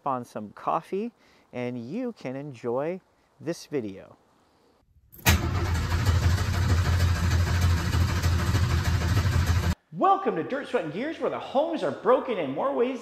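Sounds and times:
loud engine rumbling: 0:05.2 - 0:09.8.

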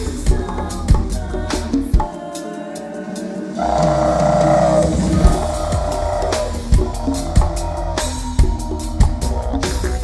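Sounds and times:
didgeridoo drone: 0:03.5 - 0:10.0.

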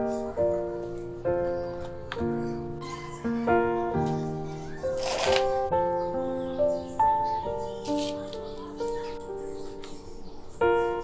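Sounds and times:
gentle keyboard melody: 0:00.0 - 0:11.0.

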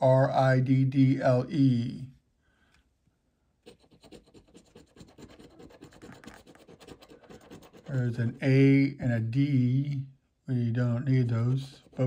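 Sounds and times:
coin scraping scratch-off ticket: 0:03.7 - 0:08.4.

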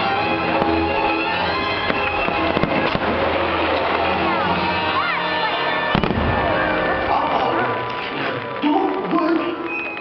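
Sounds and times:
fireworks bangs: 0:00.0 - 0:05.0, 0:05.7 - 0:10.0.

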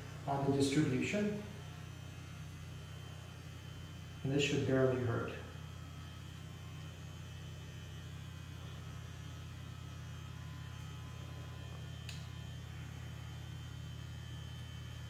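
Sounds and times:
electrical mains hum: 0:00.0 - 0:15.0
faint high whine: 0:00.0 - 0:15.0
faint click: 0:12.0 - 0:12.3.

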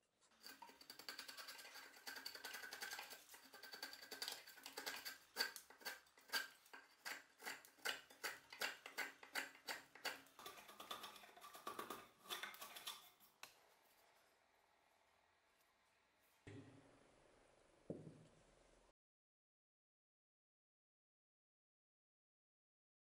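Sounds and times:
chisel scraping wood: 0:00.4 - 0:13.3.

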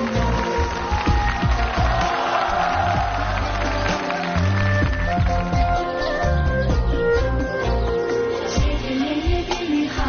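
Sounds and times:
traditional instrument ensemble: 0:00.0 - 0:08.8.

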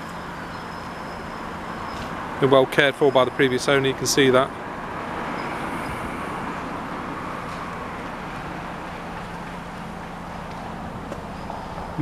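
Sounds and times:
distant road traffic: 0:00.0 - 0:12.0.

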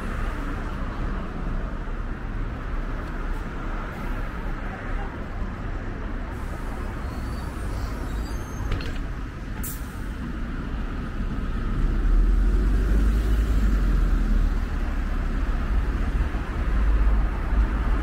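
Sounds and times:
city bus idling: 0:00.0 - 0:18.0
rumble of passing road traffic: 0:00.0 - 0:18.0.

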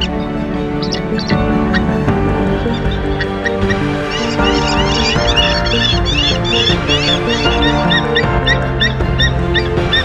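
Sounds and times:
background music with held notes: 0:00.0 - 0:10.0
bird of prey calling: 0:00.0 - 0:10.0.

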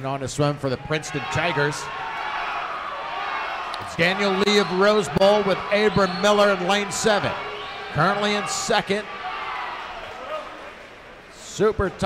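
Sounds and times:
spectators cheering: 0:00.7 - 0:12.0.

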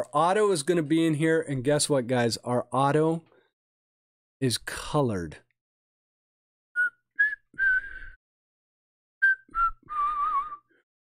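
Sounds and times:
man whistling a tune: 0:06.8 - 0:08.2, 0:09.2 - 0:10.8.

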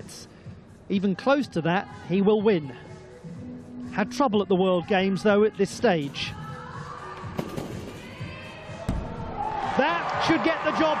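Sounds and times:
arena crowd noise: 0:06.1 - 0:11.0.

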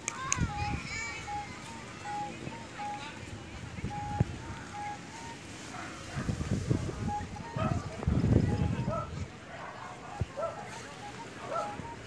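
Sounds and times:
faint distant voices: 0:00.0 - 0:12.0
wind on microphone: 0:00.2 - 0:02.6, 0:03.2 - 0:05.3, 0:06.0 - 0:09.4
short high tone repeating: 0:00.5 - 0:03.2, 0:03.8 - 0:05.4.

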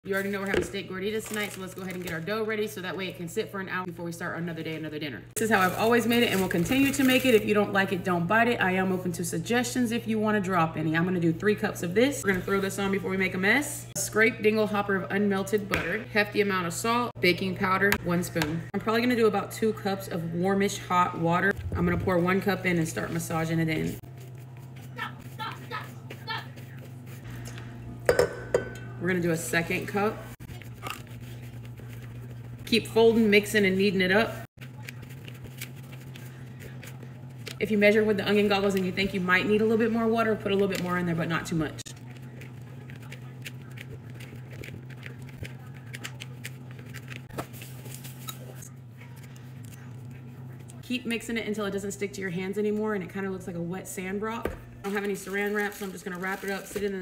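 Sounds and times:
steady low hum: 0:02.2 - 0:57.0
hands squeezing dough in bowl: 0:29.6 - 0:39.0, 0:40.6 - 0:50.8.

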